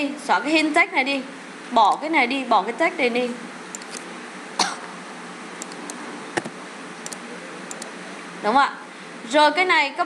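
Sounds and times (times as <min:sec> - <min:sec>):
steady background hiss: 0:00.0 - 0:10.0
person coughing: 0:04.6 - 0:04.9.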